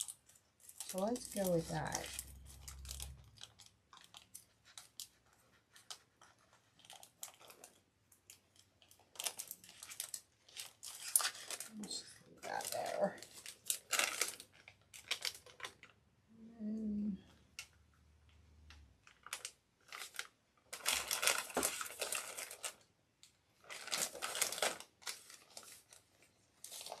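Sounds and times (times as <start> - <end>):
plastic bag crinkling: 0.0 - 16.0, 19.0 - 22.9, 23.6 - 27.0.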